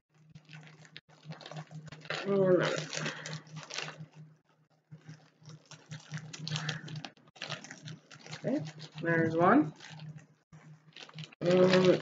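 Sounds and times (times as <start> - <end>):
low steady hum: 0.1 - 12.0
plastic packaging crinkling: 0.1 - 12.0.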